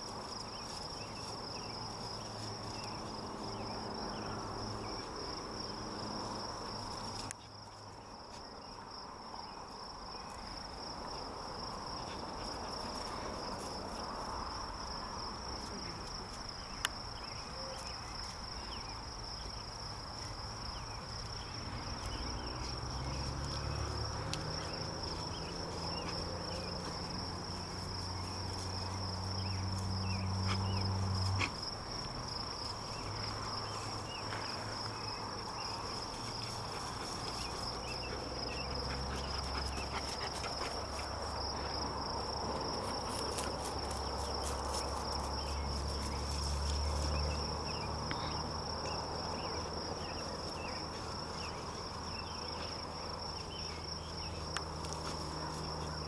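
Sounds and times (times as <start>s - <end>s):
insects chirring: 0.0s - 56.0s.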